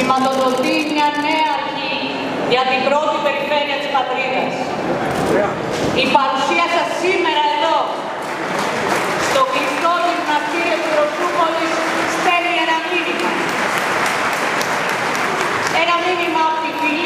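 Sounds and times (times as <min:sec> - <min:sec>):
woman speaking into microphones: 0:00.0 - 0:04.7, 0:05.9 - 0:08.1, 0:09.2 - 0:13.5, 0:15.7 - 0:17.0
audience applauding: 0:08.2 - 0:16.3.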